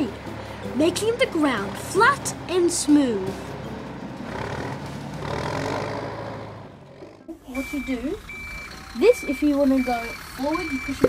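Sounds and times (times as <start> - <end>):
heavy machine engine humming: 0.0 - 11.0.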